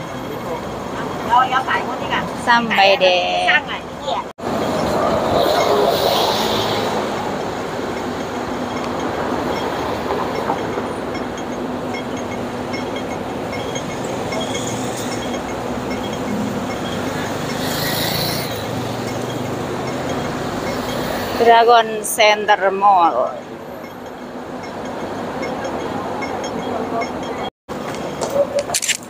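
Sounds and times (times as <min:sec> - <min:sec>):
bus passing close: 0:00.0 - 0:28.6
passing vehicles rumble: 0:00.0 - 0:28.8.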